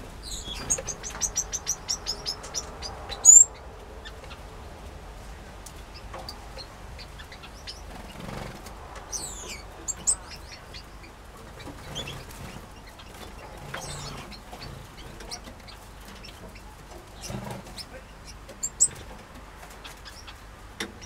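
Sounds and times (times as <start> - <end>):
finches and canaries chirping: 0.0 - 21.0.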